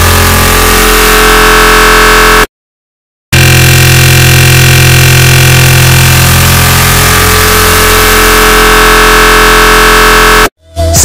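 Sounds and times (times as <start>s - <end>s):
droning tones: 0.0s - 2.5s, 3.4s - 10.5s
loud distorted digital noise: 0.0s - 2.5s, 3.4s - 10.5s.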